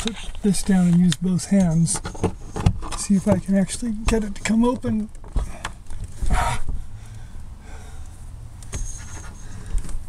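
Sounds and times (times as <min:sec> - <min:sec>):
sharp breath of effort: 0:06.2 - 0:08.3.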